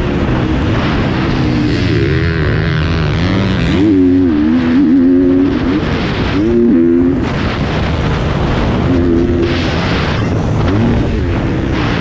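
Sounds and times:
motocross bike engine revving: 0.0s - 12.0s
wind rushing over helmet: 0.0s - 12.0s.

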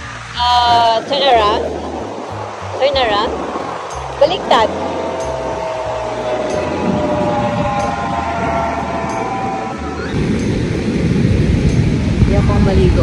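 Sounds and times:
wind buffeting microphone: 0.0s - 13.0s
steady held tones: 0.4s - 10.6s.

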